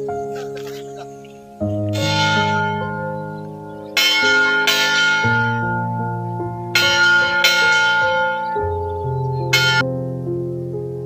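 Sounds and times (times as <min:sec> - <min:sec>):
soft background music: 0:00.0 - 0:11.0
church bell ringing: 0:01.8 - 0:09.9.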